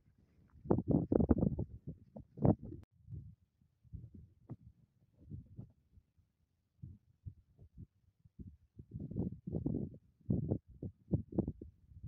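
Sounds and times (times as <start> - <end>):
faint wind buffeting microphone: 0.1 - 5.7, 6.8 - 12.0.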